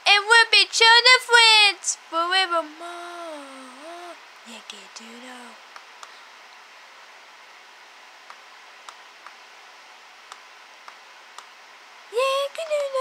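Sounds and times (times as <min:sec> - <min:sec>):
low steady hiss: 0:00.0 - 0:13.0
faint clicks: 0:10.3 - 0:11.5, 0:12.5 - 0:13.0.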